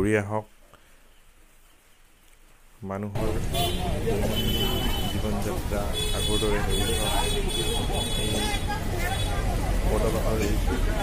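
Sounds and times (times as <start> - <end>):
people talking: 2.8 - 11.0
road traffic rumble: 3.2 - 11.0.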